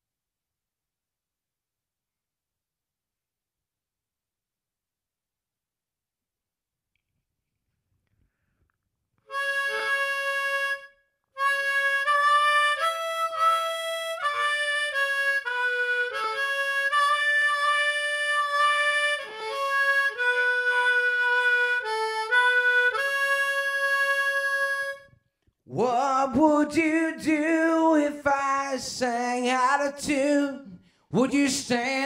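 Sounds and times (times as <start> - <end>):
harmonica melody: 9.3 - 25.2.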